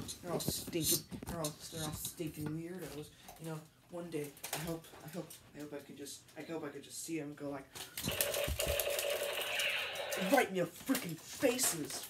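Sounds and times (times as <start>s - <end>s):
toy gun automatic burst: 8.0s - 10.4s.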